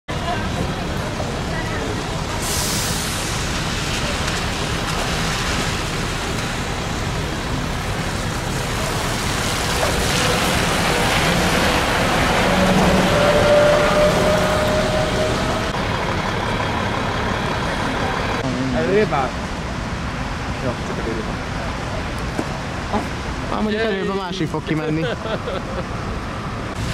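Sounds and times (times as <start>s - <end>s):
bus passing close: 0.1s - 20.7s
bus engine rumble: 0.1s - 26.9s
tyre hiss on wet road: 1.8s - 15.0s.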